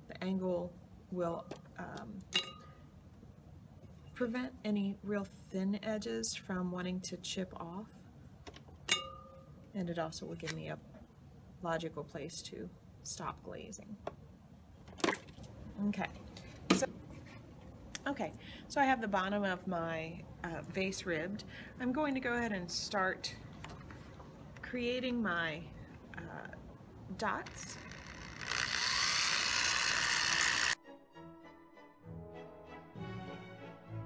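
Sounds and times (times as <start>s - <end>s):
electric drill whining: 27.5s - 30.8s
soft background music: 30.8s - 34.0s.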